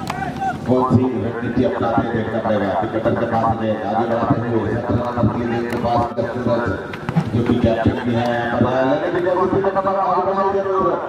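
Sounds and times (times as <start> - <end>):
person giving commentary: 0.7 - 11.0.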